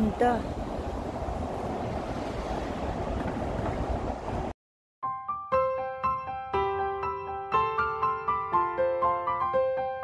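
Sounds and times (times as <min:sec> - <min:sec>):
wind buffeting microphone: 0:00.0 - 0:04.5.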